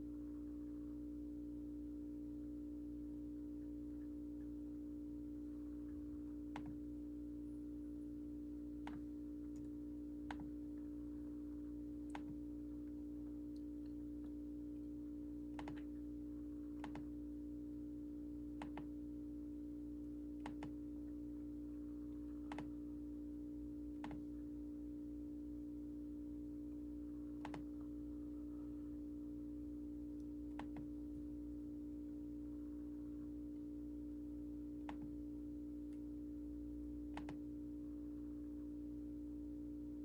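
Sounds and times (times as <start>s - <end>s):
steady low hum: 0.0s - 40.0s
faint isolated clicks: 34.8s - 35.2s, 37.1s - 37.4s.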